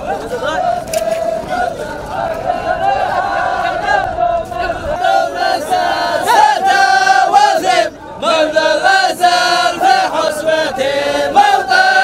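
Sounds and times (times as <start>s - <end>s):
men chanting together: 0.0s - 12.0s.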